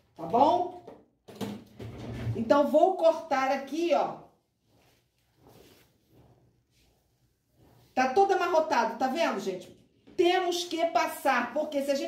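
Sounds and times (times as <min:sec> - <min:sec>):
soft rustles of cloth: 0:03.6 - 0:10.1.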